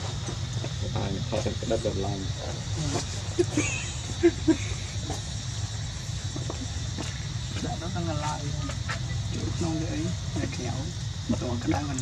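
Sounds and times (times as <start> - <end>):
distant voices: 0.0 - 12.0
high hiss: 0.0 - 12.0.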